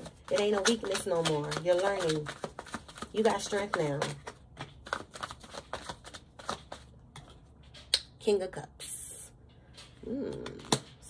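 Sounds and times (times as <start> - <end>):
cards being shuffled: 0.0 - 7.9.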